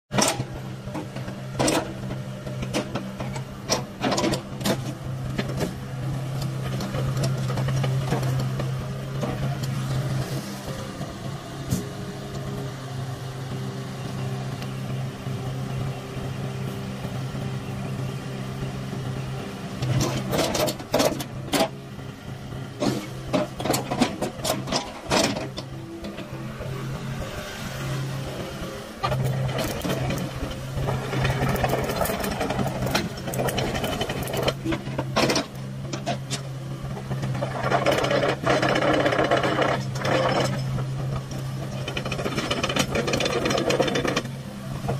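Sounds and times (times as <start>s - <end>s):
excavator diesel engine running: 0.1s - 44.9s.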